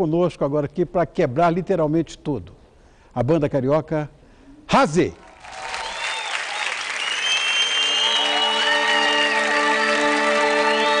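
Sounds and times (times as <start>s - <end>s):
audience applauding and cheering: 5.2s - 11.0s.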